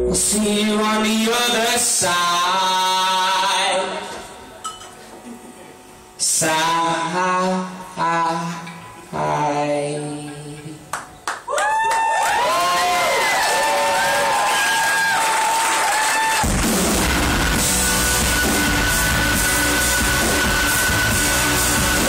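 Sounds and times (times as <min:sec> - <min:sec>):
rock band playing loud: 0:16.4 - 0:22.0.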